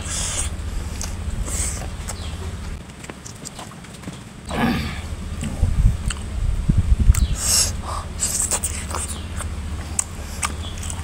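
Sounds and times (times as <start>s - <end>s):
man chewing food: 5.4s - 6.4s, 7.1s - 11.0s.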